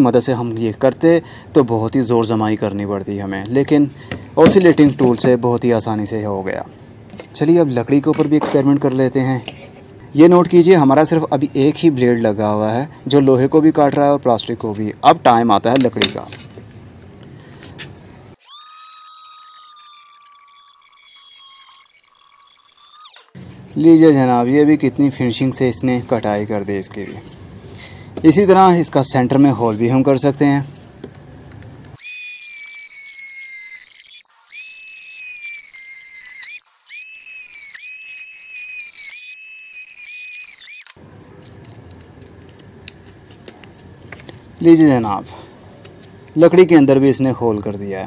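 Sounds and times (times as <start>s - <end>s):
multi-tool cutting wood: 18.4s - 23.4s, 32.0s - 41.0s.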